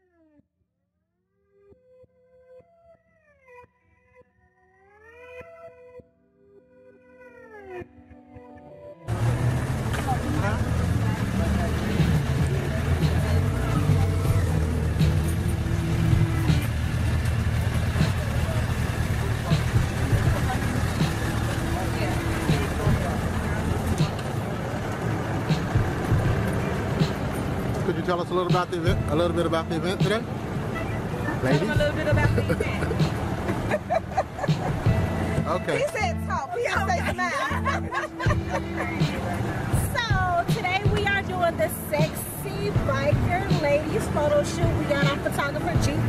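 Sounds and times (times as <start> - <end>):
motorcycle engine running: 9.1 - 46.0
people talking: 9.2 - 15.4, 17.7 - 25.1, 27.8 - 46.0.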